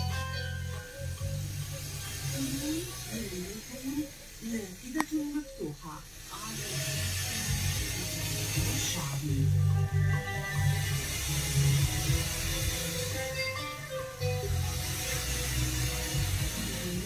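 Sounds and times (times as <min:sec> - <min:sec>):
music with steady bass: 0:00.0 - 0:05.0, 0:05.6 - 0:17.0
radio hiss: 0:00.0 - 0:17.0.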